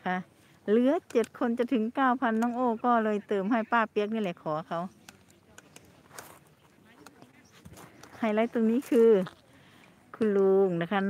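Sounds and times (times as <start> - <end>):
footsteps on garden path: 5.7 - 10.5.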